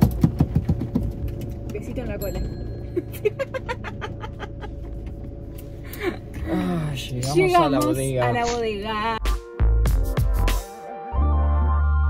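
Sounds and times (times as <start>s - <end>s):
vehicle drone on road: 0.0s - 8.5s.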